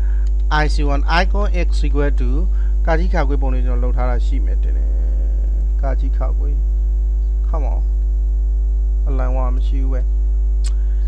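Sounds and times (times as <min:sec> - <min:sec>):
electrical mains hum: 0:00.0 - 0:11.0
murmured voice: 0:04.0 - 0:06.6.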